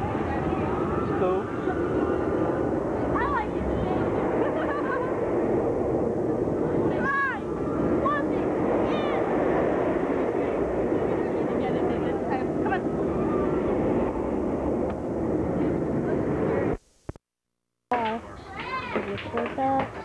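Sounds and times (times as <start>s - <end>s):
crowd chatter: 0.0s - 16.8s, 17.9s - 20.0s.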